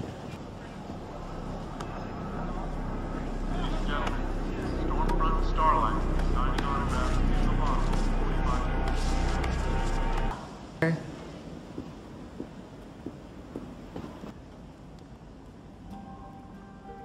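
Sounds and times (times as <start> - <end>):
low drone: 0.4 - 10.5
murmured voices: 0.4 - 11.0.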